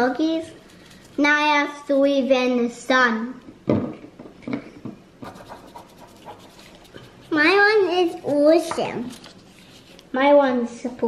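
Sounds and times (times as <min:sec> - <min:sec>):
paintbrush scratching on paper: 0:05.2 - 0:10.1.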